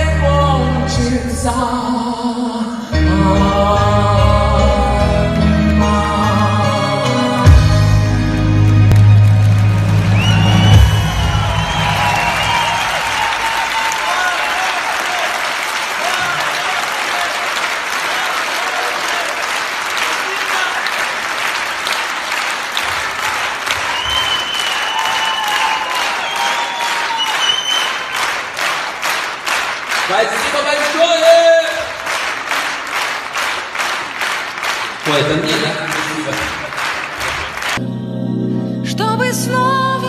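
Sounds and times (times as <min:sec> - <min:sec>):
backing music: 0:00.0 - 0:13.8, 0:37.1 - 0:40.0
audience applauding: 0:08.8 - 0:37.8.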